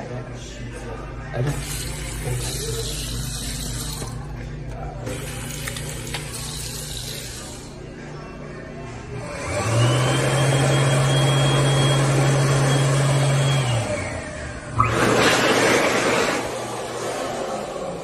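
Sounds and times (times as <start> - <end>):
hand dryer whining and blowing: 9.2 - 18.0.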